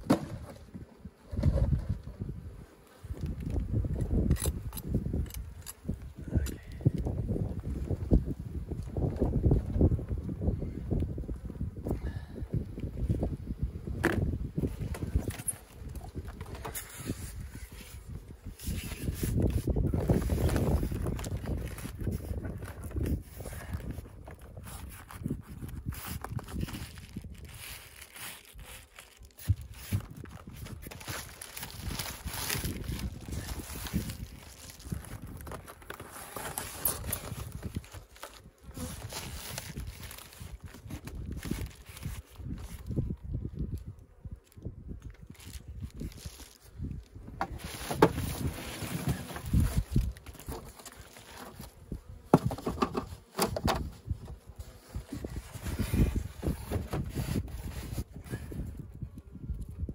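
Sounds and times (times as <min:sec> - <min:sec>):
knocks and rustles of wooden hive parts: 0:00.0 - 0:10.4, 0:13.1 - 0:59.9
wind buffeting microphone: 0:00.3 - 0:50.8, 0:51.5 - 0:59.9.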